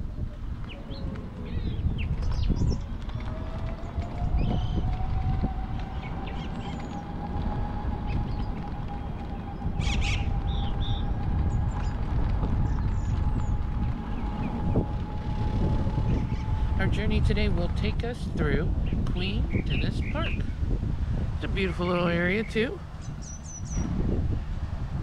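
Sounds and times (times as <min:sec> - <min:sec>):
scooter motor whine: 0:00.0 - 0:25.0
wind rumble on microphone: 0:00.0 - 0:25.0
bird chirps: 0:22.4 - 0:23.9.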